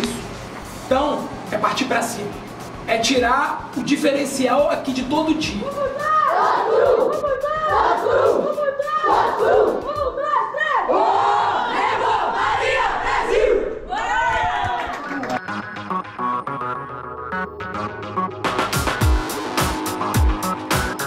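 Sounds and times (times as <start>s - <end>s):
electronic music: 0.8s - 10.4s, 15.2s - 21.0s
team shouting a chant: 5.7s - 14.7s.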